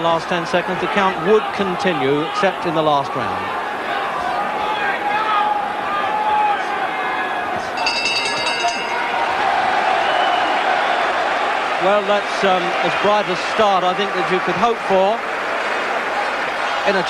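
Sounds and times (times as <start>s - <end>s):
arena crowd noise: 0.0s - 17.0s
crowd cheering and applause: 3.2s - 17.0s
ring bell struck: 7.8s - 9.3s.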